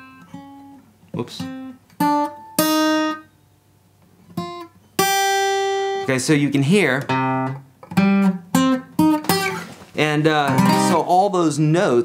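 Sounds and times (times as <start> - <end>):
acoustic guitar picked notes: 0.0 - 11.4.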